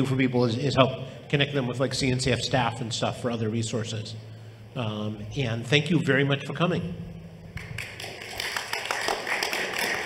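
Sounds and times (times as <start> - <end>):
audience applause: 7.6 - 10.0.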